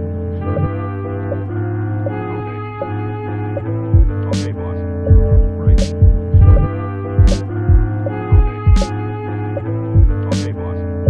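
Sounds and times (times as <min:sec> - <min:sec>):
hip-hop beat: 0:00.0 - 0:11.0
sustained sampled tones: 0:00.0 - 0:11.0
deep kick drums: 0:03.9 - 0:04.3, 0:05.1 - 0:08.9, 0:09.9 - 0:10.3.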